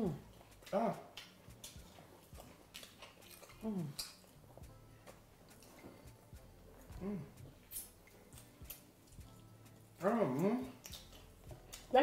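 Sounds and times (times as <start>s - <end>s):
people chewing food: 0.0s - 12.0s
person humming mm: 3.6s - 4.0s, 6.9s - 7.5s.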